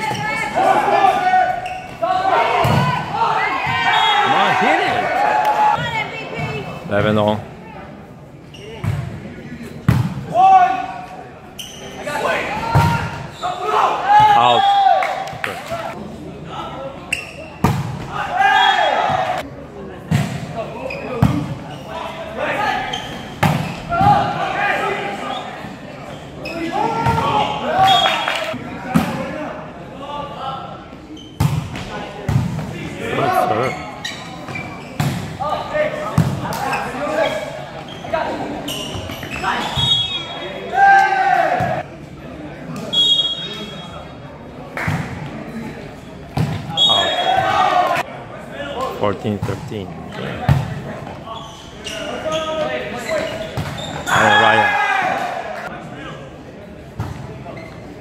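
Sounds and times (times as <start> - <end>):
players shouting: 0.0 - 6.7, 18.1 - 19.5, 39.4 - 41.8, 54.0 - 55.7.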